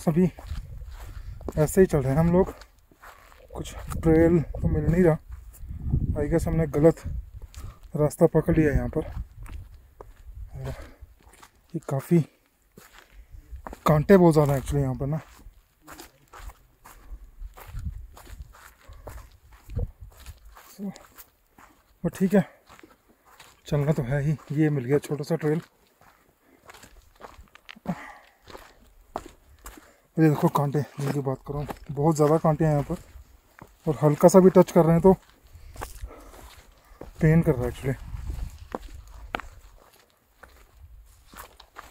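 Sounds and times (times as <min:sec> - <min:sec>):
sharp crunch underfoot: 0:00.0 - 0:05.7, 0:08.6 - 0:41.9
footsteps on stony grass: 0:00.0 - 0:41.9.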